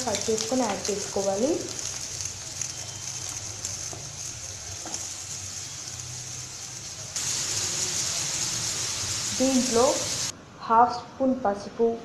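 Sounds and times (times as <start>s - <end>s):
onions sizzling in oil: 0.0s - 10.3s.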